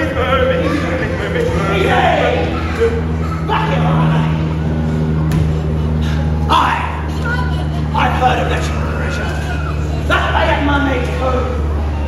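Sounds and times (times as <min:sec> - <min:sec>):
low-pitched hum: 0:00.0 - 0:12.0.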